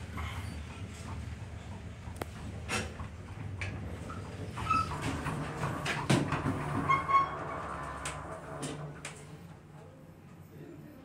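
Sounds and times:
elevator equipment humming: 0:00.6 - 0:10.5.

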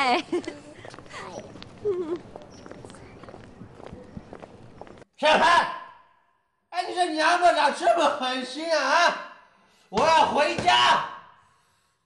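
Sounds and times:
footsteps on paved path: 0:00.1 - 0:05.1.

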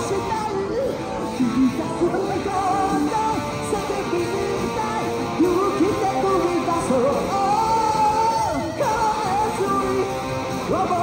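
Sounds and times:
electric guitar melody: 0:00.0 - 0:11.0
rock accompaniment: 0:00.0 - 0:11.0.

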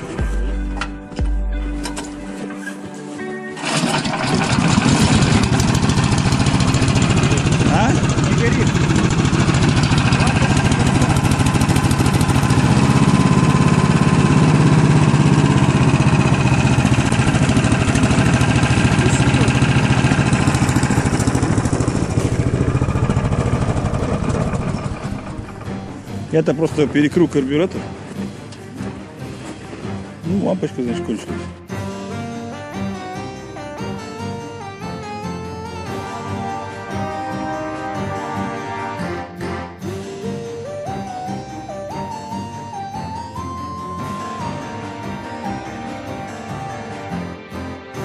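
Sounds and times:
recoil cord pull-start: 0:03.6 - 0:26.2
small engine running: 0:03.6 - 0:26.6.

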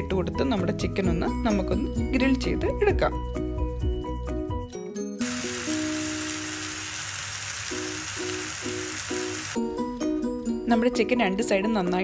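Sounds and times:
background music: 0:00.0 - 0:12.0
chicken sizzling in a pan: 0:05.2 - 0:09.6.

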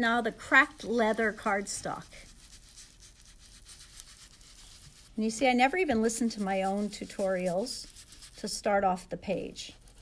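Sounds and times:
foam tool scrubbing on cardstock: 0:00.0 - 0:10.0.

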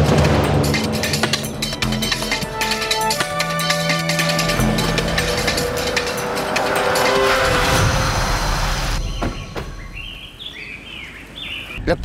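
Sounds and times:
car engine and tyre noise: 0:00.0 - 0:10.2
birds chirping: 0:01.0 - 0:12.0.

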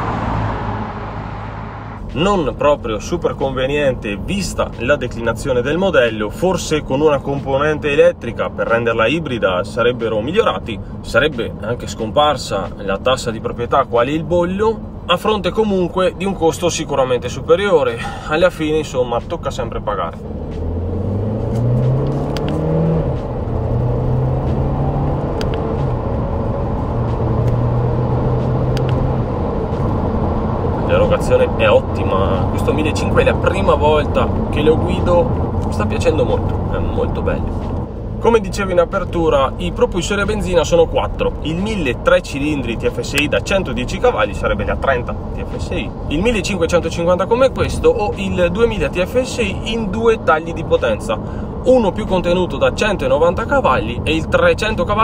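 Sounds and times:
car driving past: 0:00.0 - 0:02.1, 0:20.1 - 0:38.6
car engine accelerating: 0:00.0 - 0:17.4, 0:18.0 - 0:55.0.

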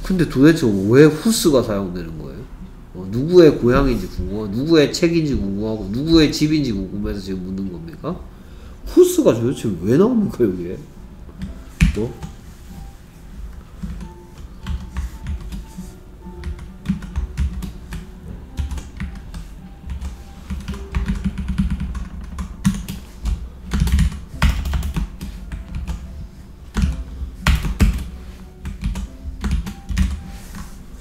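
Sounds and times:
background music: 0:00.0 - 0:31.0
typing on computer keyboard: 0:13.8 - 0:15.7, 0:16.4 - 0:18.0, 0:18.6 - 0:26.0, 0:26.8 - 0:30.2.

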